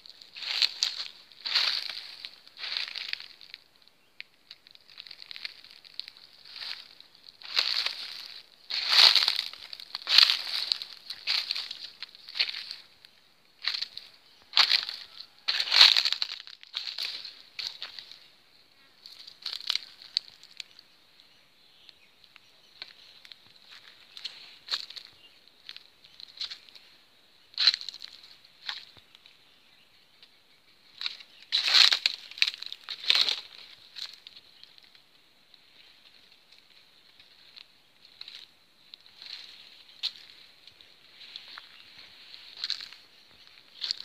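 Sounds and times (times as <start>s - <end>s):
dry undergrowth rustling and crunching: 0.0s - 44.0s.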